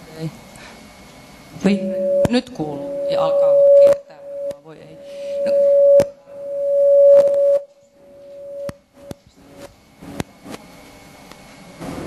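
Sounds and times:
microphone feedback howl: 1.6 - 9.2.

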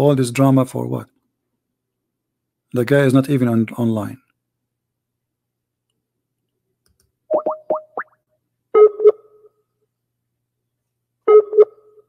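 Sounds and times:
quick rising blips: 7.3 - 8.2.

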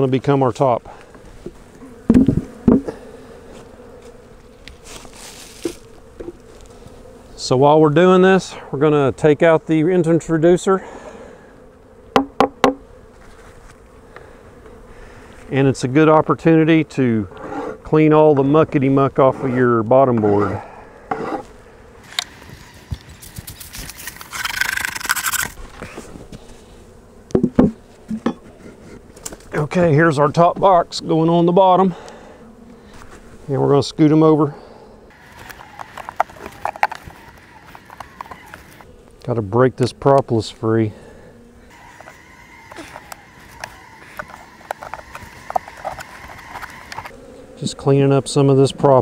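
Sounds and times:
honey bees humming: 0.0 - 49.0
wooden hive frames knocking: 1.4 - 3.0, 12.1 - 12.8, 27.3 - 28.6, 35.2 - 38.8, 41.7 - 47.1
knocks on wooden beehive: 2.1 - 2.9, 12.1 - 12.8, 27.3 - 28.4.

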